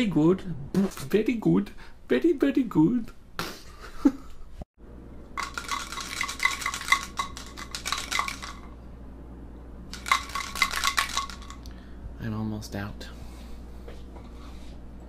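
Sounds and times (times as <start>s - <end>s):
kitchenware clinking and clattering: 5.4s - 8.8s, 10.0s - 11.7s.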